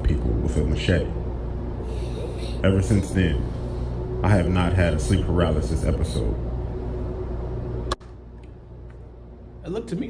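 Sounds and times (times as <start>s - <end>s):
low background drone: 0.0s - 10.0s.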